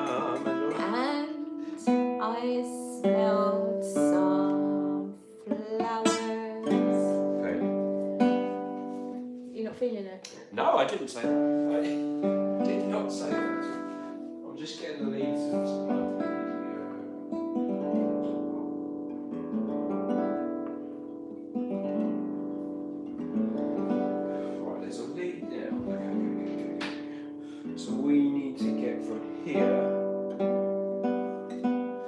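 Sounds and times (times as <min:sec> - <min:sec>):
acoustic guitar strummed slowly: 0:00.0 - 0:09.8, 0:10.8 - 0:32.0.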